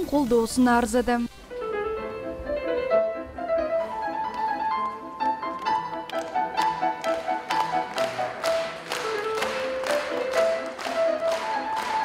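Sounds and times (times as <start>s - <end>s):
grand piano playing: 1.5s - 12.0s.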